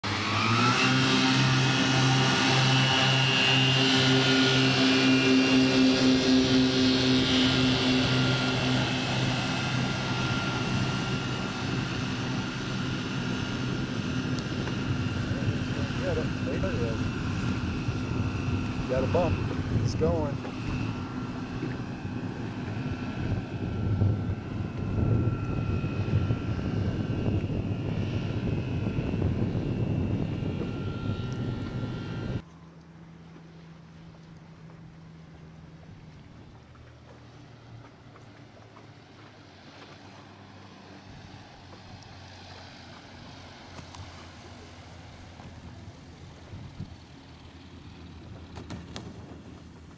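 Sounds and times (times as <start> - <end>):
high electric motor whine: 0.0 - 49.9
propeller drone: 0.0 - 49.9.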